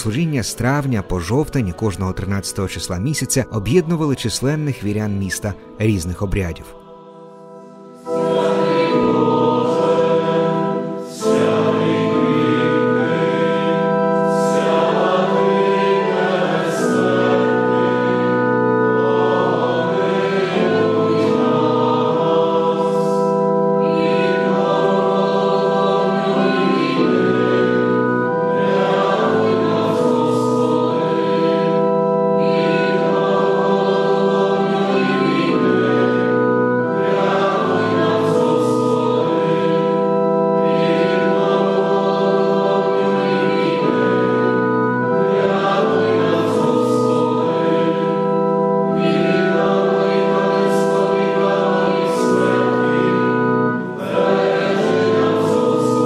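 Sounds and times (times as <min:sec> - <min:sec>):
choir singing held chords: 0:00.0 - 0:56.0.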